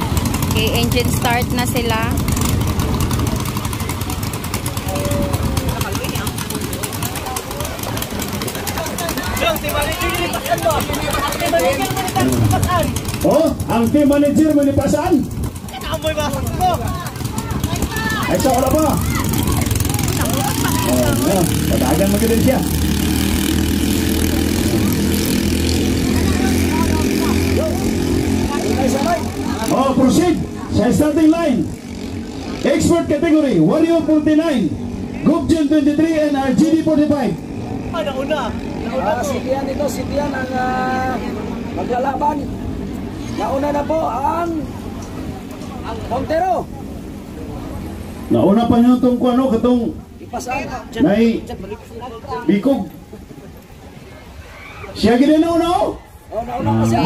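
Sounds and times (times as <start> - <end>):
crowd voices and shouting: 0.0 - 57.0
propellers churning water: 0.0 - 57.0
racing boat engines droning: 0.0 - 57.0.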